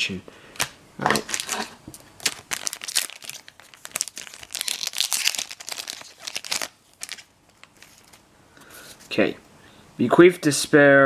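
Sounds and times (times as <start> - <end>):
foil wrapper tearing and crinkling: 1.0 - 8.2.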